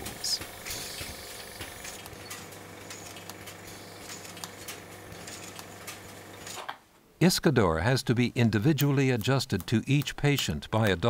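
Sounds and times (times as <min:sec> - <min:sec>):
machine low hum: 0:00.0 - 0:06.6.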